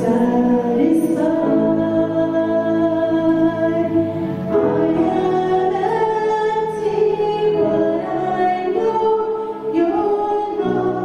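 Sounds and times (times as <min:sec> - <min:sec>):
piano and keyboard chords: 0:00.0 - 0:11.0.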